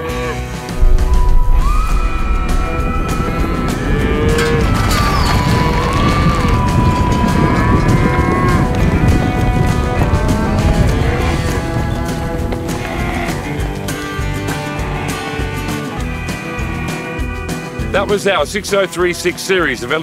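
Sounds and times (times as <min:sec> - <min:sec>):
background music: 0:00.0 - 0:20.0
cattle mooing: 0:02.0 - 0:17.6.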